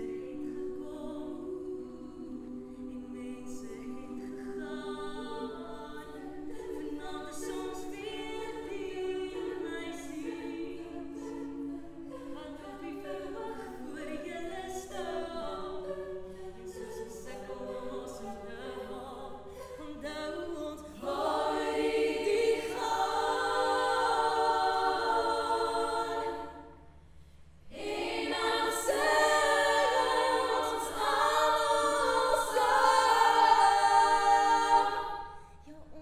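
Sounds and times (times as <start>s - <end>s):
women's choir singing: 0.0s - 27.0s, 27.6s - 36.0s.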